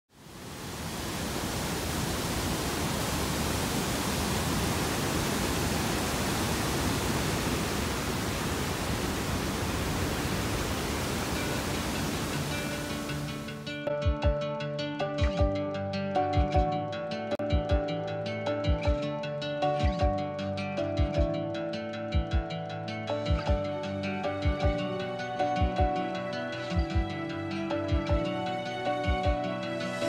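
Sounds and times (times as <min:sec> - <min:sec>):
waterfall rushing: 0:00.2 - 0:13.8
acoustic guitar music: 0:11.4 - 0:30.0.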